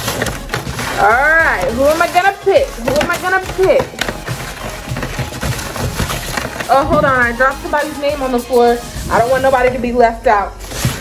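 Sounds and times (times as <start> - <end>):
background music: 0.0 - 11.0
paper slips rustling: 0.0 - 11.0.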